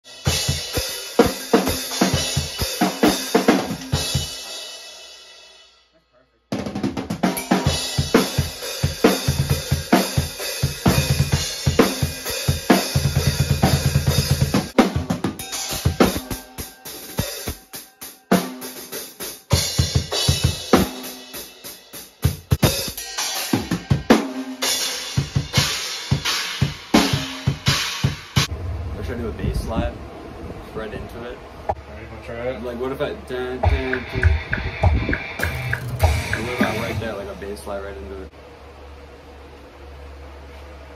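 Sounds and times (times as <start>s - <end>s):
drum kit played hard: 0.0s - 5.7s, 6.5s - 28.5s, 33.6s - 38.3s
bass drum strokes: 33.6s - 37.6s.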